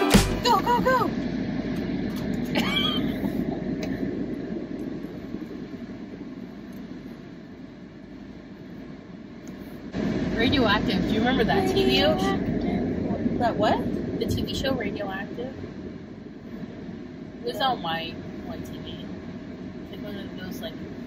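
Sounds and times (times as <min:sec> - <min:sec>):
voices: 0:00.0 - 0:01.3, 0:02.2 - 0:04.1, 0:10.0 - 0:15.6, 0:17.4 - 0:19.2, 0:19.9 - 0:20.9
road noise inside moving car: 0:00.0 - 0:21.0.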